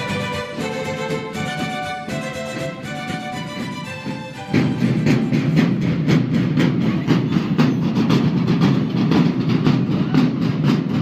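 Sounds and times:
marching snare and bass drums: 0.0s - 11.0s.

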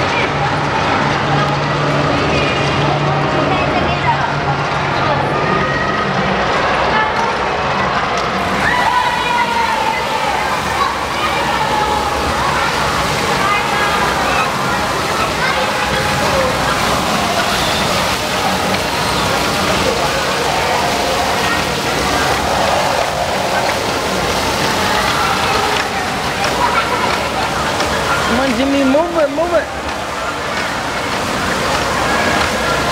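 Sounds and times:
people chattering: 0.0s - 32.9s
water jets splashing on wall: 0.0s - 32.9s.

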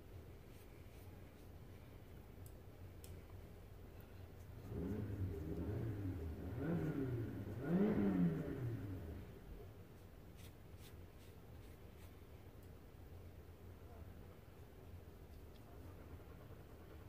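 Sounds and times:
vehicle engine accelerating: 4.6s - 9.5s.

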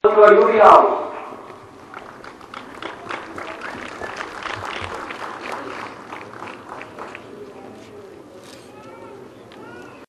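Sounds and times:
faint voices talking: 1.6s - 10.0s.

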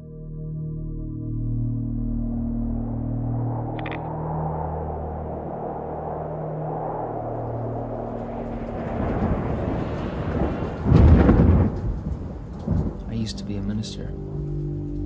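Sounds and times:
low musical drone: 0.0s - 10.7s, 12.7s - 15.0s
rumbling thunder: 5.9s - 13.7s
loud thunderclap: 8.4s - 13.5s.

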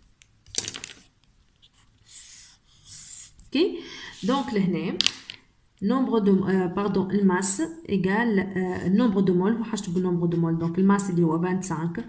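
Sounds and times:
marker scratching on paper: 1.6s - 4.7s, 8.5s - 11.9s.

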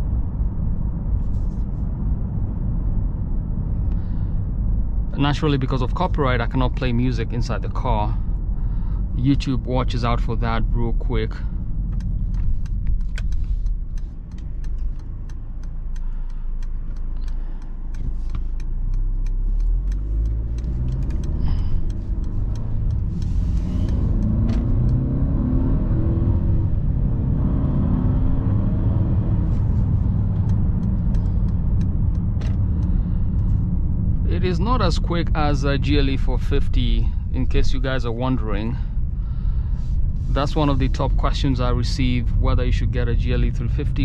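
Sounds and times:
car engine accelerating: 0.0s - 44.0s
low road rumble: 0.0s - 44.0s.

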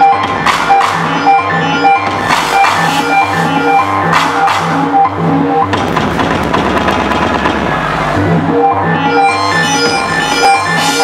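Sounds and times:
loud techno music: 0.0s - 11.0s.

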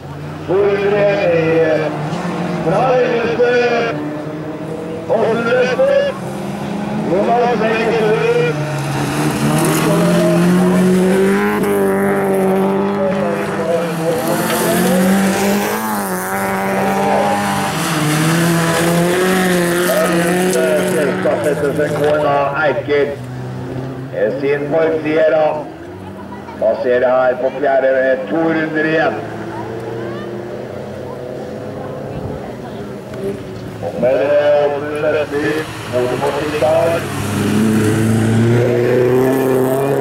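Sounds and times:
racing car engines revving: 0.0s - 40.0s.

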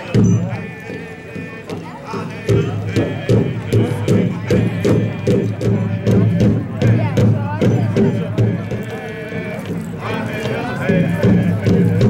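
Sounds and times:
drum beats: 0.0s - 12.0s.

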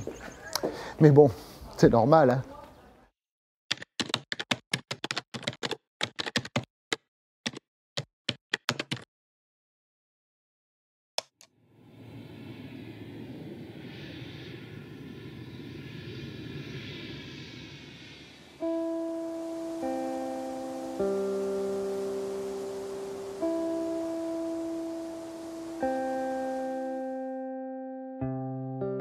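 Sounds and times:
soft whoosh: 11.6s - 27.0s
sustained keyboard chords: 18.6s - 29.0s.

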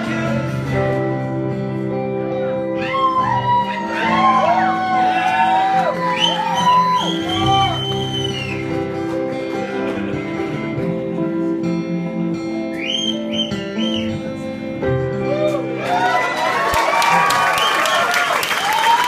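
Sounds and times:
acoustic guitar chords: 0.0s - 2.8s, 6.1s - 15.8s
lead guitar bending notes: 0.0s - 16.3s.

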